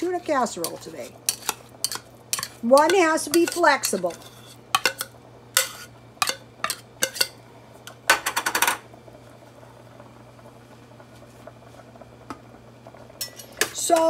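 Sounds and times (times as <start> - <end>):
metal spoon scraping tin can: 0.6 - 5.0.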